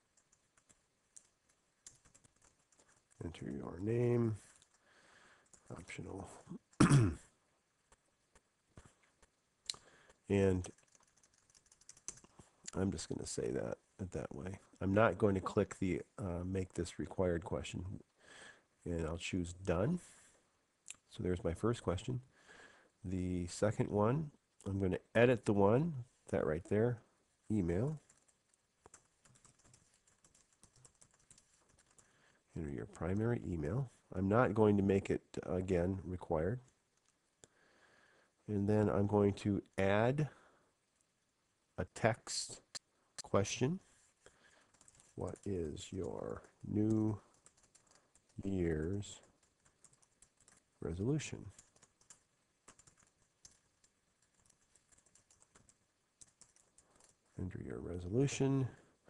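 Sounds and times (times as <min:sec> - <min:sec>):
faint keyboard typing: 0:00.0 - 0:06.8, 0:07.8 - 0:18.2, 0:23.2 - 0:37.6, 0:41.8 - 0:59.0
typing on computer keyboard: 0:00.1 - 0:03.2, 0:10.1 - 0:12.3, 0:27.9 - 0:32.1, 0:44.6 - 0:50.8, 0:51.5 - 0:57.3.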